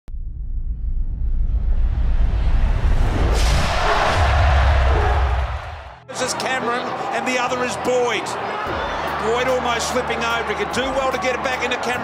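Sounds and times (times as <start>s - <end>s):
deep rumble: 0.1s - 5.6s
whoosh: 0.2s - 5.7s.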